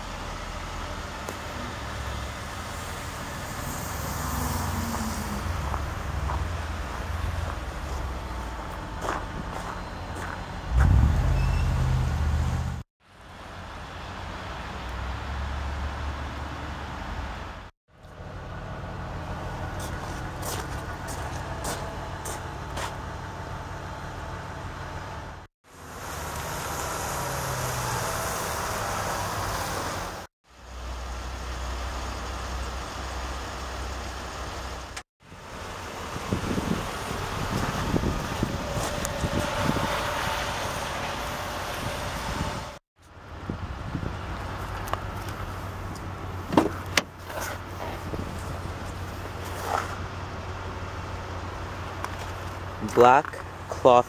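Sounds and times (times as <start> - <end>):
distant traffic: 0.0 - 54.0
parking lot rumble: 0.0 - 54.0.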